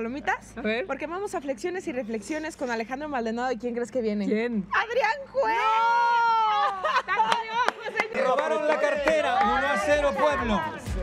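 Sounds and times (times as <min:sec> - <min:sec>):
woman laughing: 0:06.4 - 0:08.1.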